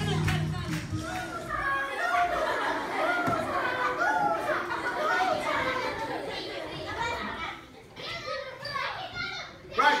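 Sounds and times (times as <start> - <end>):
children talking and calling out: 0.9 - 10.0.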